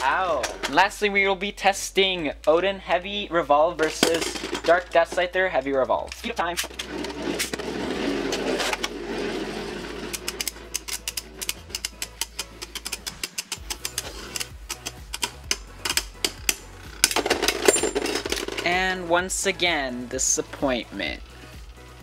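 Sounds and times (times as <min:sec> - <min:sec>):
ripcord launching spinning tops: 0:06.2 - 0:18.7
spinning tops whirring: 0:06.7 - 0:18.7
spinning tops clicking together: 0:10.0 - 0:17.7.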